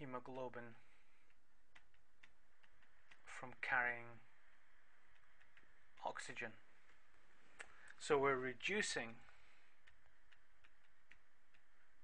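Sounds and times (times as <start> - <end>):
stylus tapping on tablet: 1.3 - 3.3, 9.8 - 11.7.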